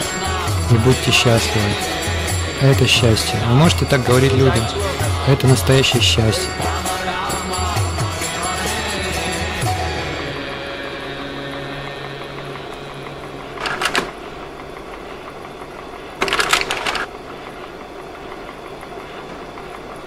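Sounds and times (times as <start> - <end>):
devotional music: 0.0 - 14.2
slide projector whirring: 0.0 - 20.0
slide projector clattering: 13.6 - 14.2, 16.2 - 17.1.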